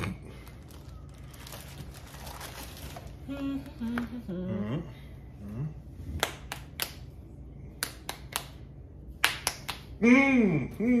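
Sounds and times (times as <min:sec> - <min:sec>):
closed-mouth humming voice: 0:03.2 - 0:06.2, 0:09.9 - 0:11.0
fists smacking palms: 0:06.2 - 0:07.1, 0:07.7 - 0:10.0.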